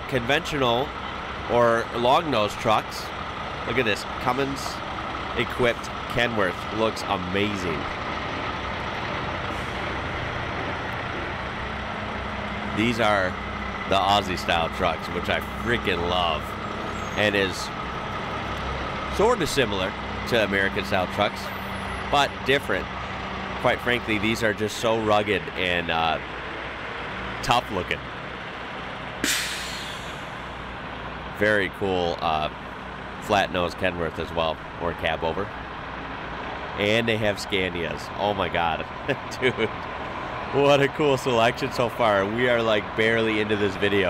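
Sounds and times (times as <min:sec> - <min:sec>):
heavy trucks driving past: 0:00.0 - 0:44.0
air brake hiss: 0:29.2 - 0:30.4.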